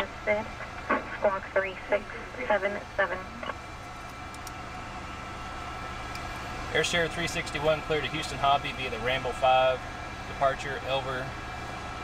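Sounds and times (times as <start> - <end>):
jet cockpit hum and hiss: 0.0 - 12.0.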